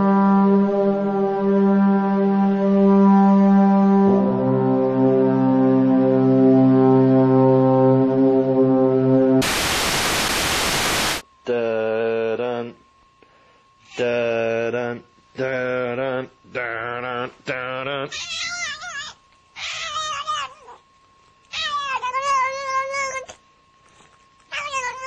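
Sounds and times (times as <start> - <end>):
sustained brass-like chord: 0.0 - 11.2
loud tv static hiss: 9.4 - 12.8
cat yowling meows: 18.1 - 20.8.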